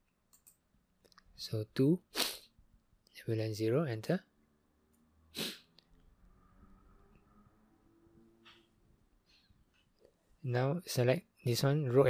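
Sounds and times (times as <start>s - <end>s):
sharp breath: 5.4s - 5.7s.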